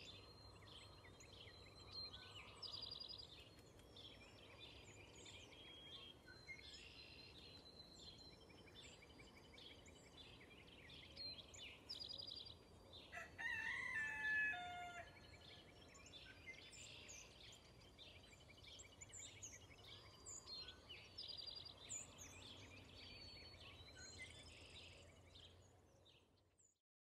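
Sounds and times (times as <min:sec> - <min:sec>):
small birds chirping and trilling: 0:00.0 - 0:26.6.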